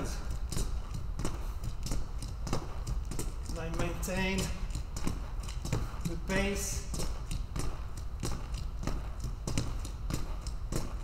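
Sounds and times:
sneakered feet landing on floor: 0:00.0 - 0:11.0.

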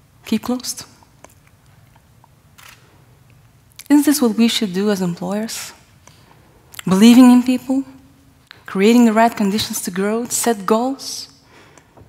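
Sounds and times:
woman speaking: 0:00.3 - 0:01.0, 0:03.8 - 0:05.8, 0:06.8 - 0:08.0, 0:08.7 - 0:11.4
faint breath hiss: 0:05.6 - 0:07.0, 0:11.3 - 0:12.0.

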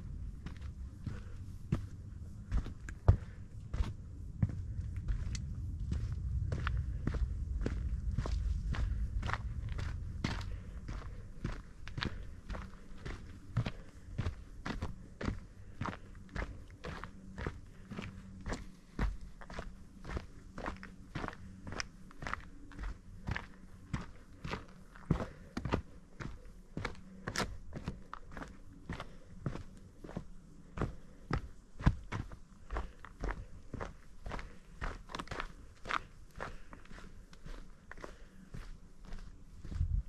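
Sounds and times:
footsteps on dirt trail: 0:00.0 - 0:40.0
low rumble: 0:00.0 - 0:40.0.

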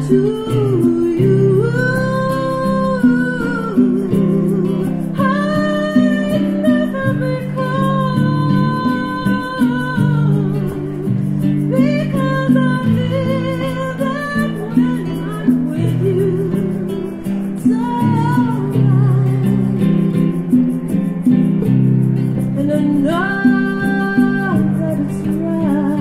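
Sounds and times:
woman singing: 0:00.0 - 0:21.7, 0:22.4 - 0:26.0
acoustic guitar chords: 0:00.0 - 0:26.0.

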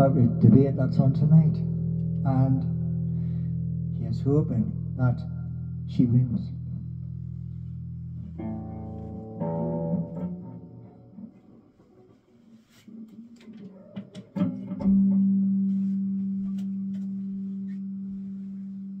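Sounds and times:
electric guitar chords: 0:00.0 - 0:12.1, 0:13.4 - 0:19.0
guitar handling clicks: 0:13.1 - 0:15.4.

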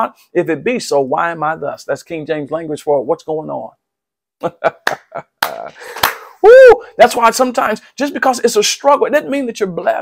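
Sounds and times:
man chuckling: 0:04.4 - 0:06.0.

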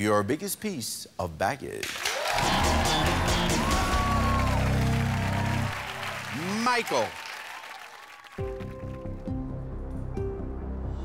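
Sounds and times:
studio audience applause: 0:01.8 - 0:09.3
tense music with low bass: 0:08.5 - 0:11.0.

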